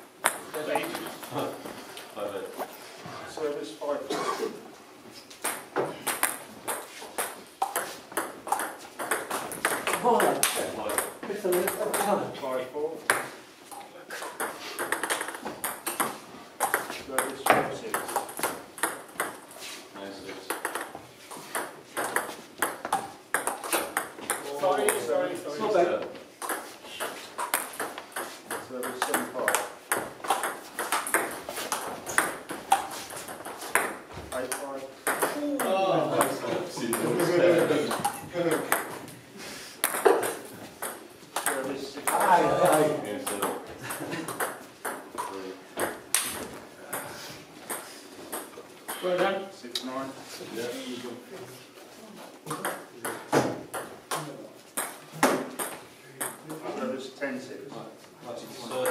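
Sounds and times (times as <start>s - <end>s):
people talking: 34.3s - 38.8s, 41.4s - 43.6s.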